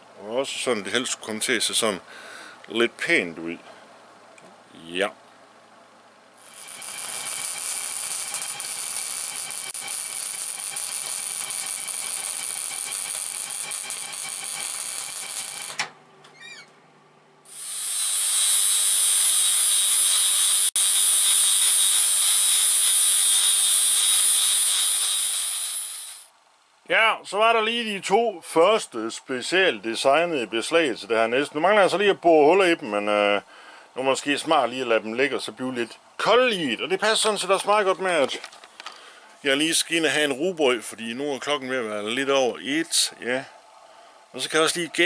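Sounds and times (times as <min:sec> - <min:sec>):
angle grinder grinding steel: 0:06.4 - 0:15.8, 0:17.5 - 0:26.3.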